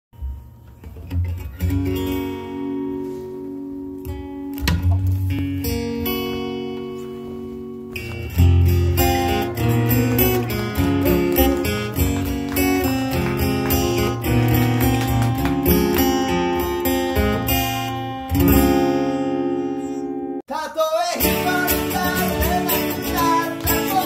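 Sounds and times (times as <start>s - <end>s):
acoustic guitar strumming: 0.2s - 20.4s, 21.2s - 24.0s.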